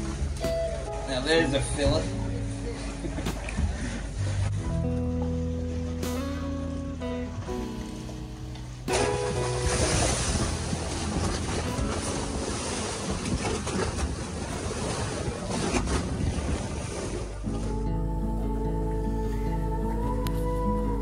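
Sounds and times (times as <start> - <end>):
background music: 0.0 - 13.2, 17.4 - 21.0
sea noise: 0.0 - 21.0
wind buffeting microphone: 9.2 - 17.4.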